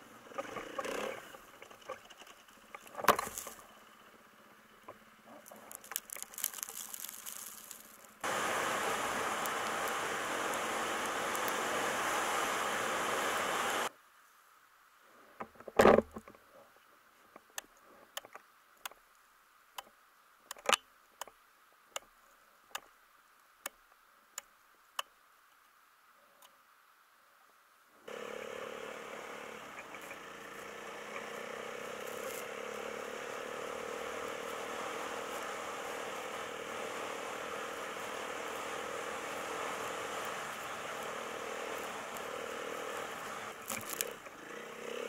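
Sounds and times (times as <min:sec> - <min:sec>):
vehicle moving over snow: 0:05.8 - 0:13.9, 0:28.1 - 0:45.0.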